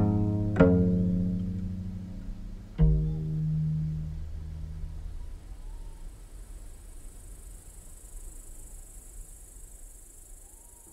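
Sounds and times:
low string note ringing: 0.0s - 5.7s
crickets chirring: 3.0s - 10.9s.

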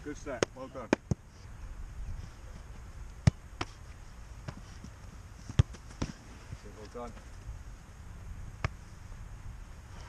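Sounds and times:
football thuds: 0.2s - 1.2s, 3.2s - 6.6s.

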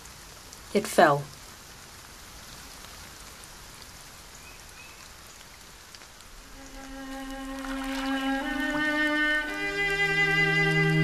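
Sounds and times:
steady rainfall: 0.0s - 11.0s.

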